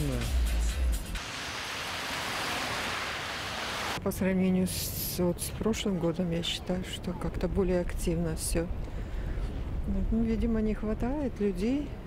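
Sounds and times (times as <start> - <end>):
car tyres hissing on wet road: 1.2 - 4.0.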